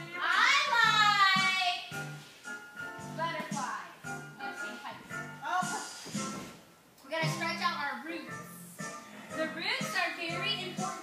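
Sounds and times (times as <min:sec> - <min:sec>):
music with singing: 0:08.3 - 0:11.0.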